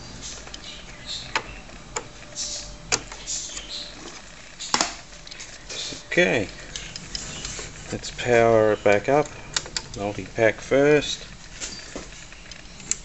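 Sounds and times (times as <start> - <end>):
cable rustling: 1.4 - 13.0.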